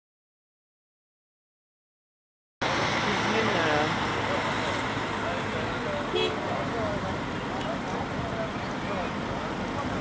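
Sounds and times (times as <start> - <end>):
distant people talking: 3.0 - 10.0.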